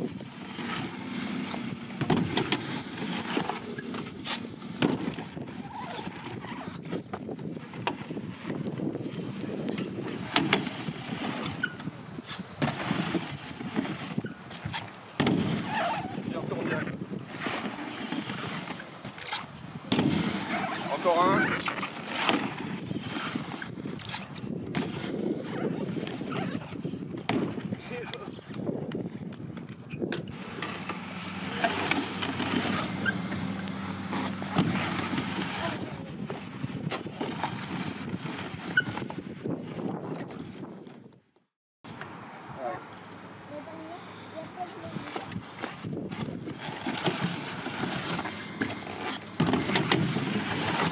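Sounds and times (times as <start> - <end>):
bike tyres rolling on ramp: 0.0 - 41.2, 44.6 - 50.9
knocks and thuds from landings: 2.0 - 2.7.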